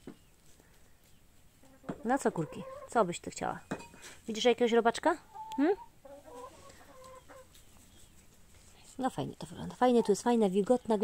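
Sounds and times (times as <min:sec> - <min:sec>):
hen clucking softly: 0:05.2 - 0:08.1.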